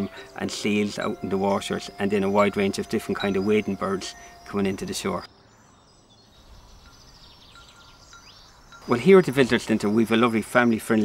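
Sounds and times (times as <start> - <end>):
man speaking: 0.0 - 5.3, 8.8 - 11.0
faint outdoor ambience: 0.0 - 11.0
high bird chirps: 0.1 - 11.0.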